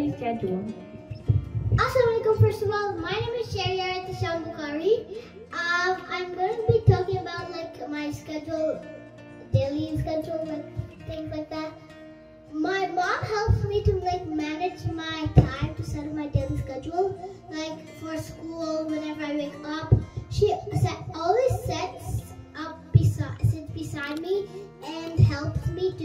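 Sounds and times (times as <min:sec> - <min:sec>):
child singing: 0:01.8 - 0:08.9, 0:09.5 - 0:11.8, 0:12.5 - 0:26.0.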